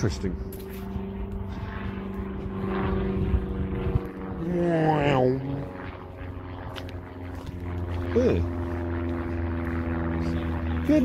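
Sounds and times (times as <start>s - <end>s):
low rumble: 0.0s - 10.8s
engine hum: 0.0s - 11.0s.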